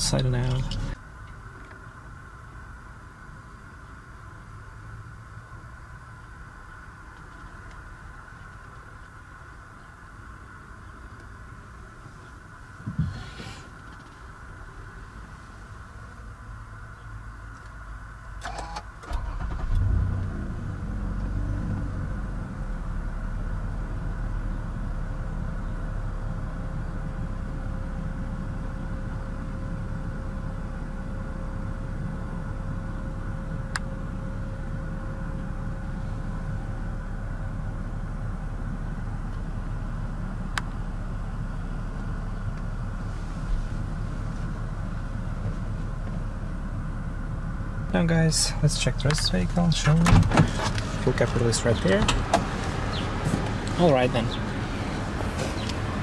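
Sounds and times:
car engine starting and idling: 0:00.0 - 0:56.0.

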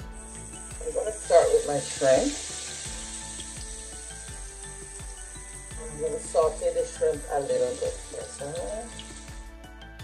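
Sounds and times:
shrimp sizzling in a frying pan: 0:00.0 - 0:09.6
background music: 0:00.0 - 0:10.0.

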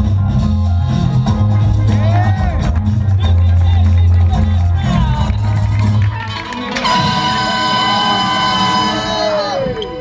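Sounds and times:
long held high note: 0:06.7 - 0:10.0.

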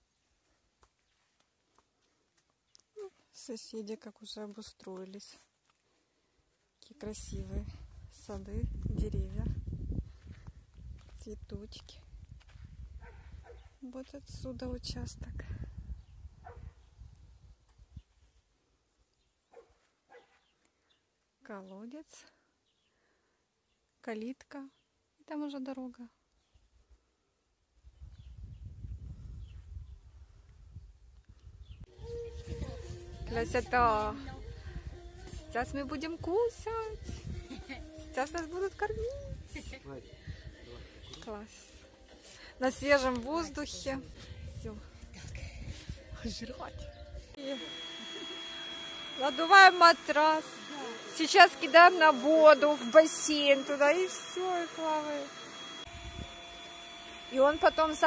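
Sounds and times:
faint dog barks: 0:13.0 - 0:13.8, 0:19.5 - 0:20.4
electric air pump humming and whining: 0:31.9 - 0:39.8, 0:47.3 - 0:58.0.

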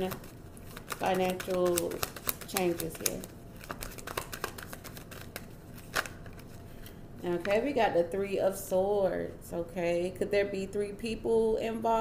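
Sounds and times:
cards being shuffled: 0:00.0 - 0:07.6.

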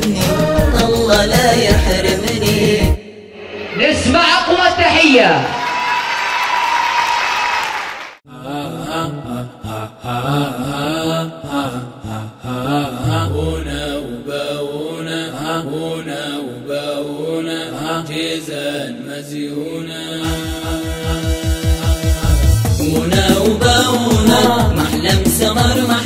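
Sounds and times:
chanted folk singing: 0:00.0 - 0:03.2, 0:08.3 - 0:26.0.

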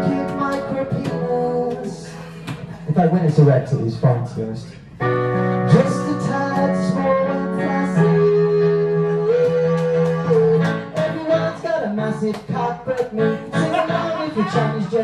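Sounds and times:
electronic keyboard chords: 0:00.0 - 0:03.0, 0:04.8 - 0:15.0
man singing long notes: 0:05.4 - 0:15.0.

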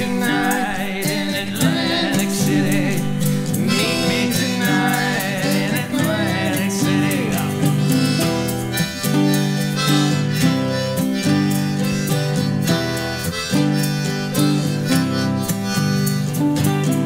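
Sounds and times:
harmonica melody: 0:00.0 - 0:17.0
strummed acoustic guitars: 0:00.0 - 0:17.0.

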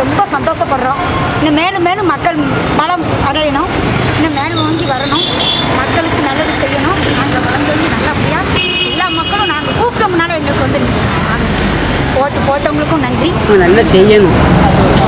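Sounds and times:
woman talking: 0:00.0 - 0:11.5, 0:12.1 - 0:13.6
street traffic: 0:00.0 - 0:15.0.

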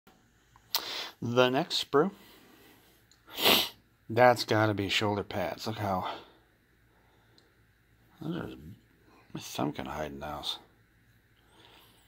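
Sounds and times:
nose sniff: 0:03.3 - 0:03.8.

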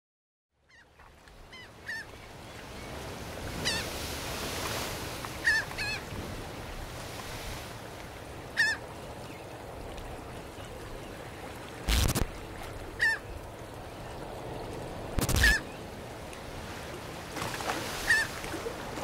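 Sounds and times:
gulls calling: 0:11.9 - 0:13.4, 0:15.1 - 0:15.8.

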